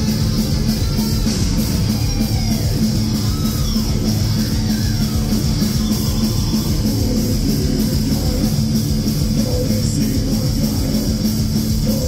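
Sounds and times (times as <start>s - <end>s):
distorted electric guitars: 0.0s - 12.0s
drum kit fast beat: 0.0s - 12.0s.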